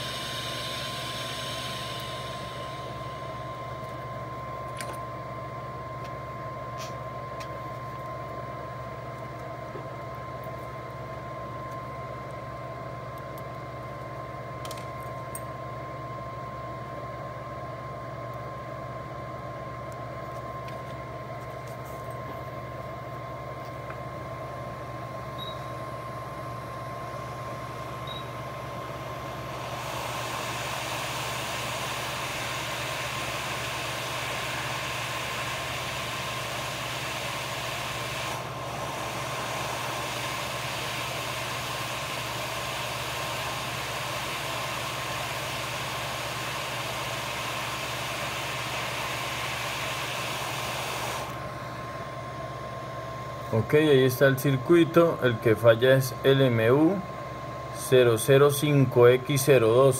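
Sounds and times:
hot air blower hissing: 0.0s - 10.4s, 24.4s - 59.9s
workbench hum with high tone: 0.0s - 59.9s.

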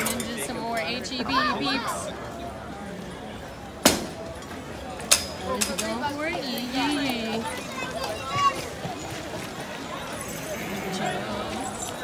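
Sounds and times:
outdoor crowd chatter: 0.0s - 12.0s.

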